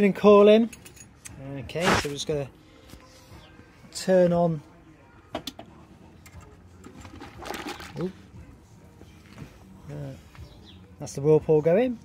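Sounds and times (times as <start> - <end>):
liquid splashing into kettle: 6.9 - 8.0.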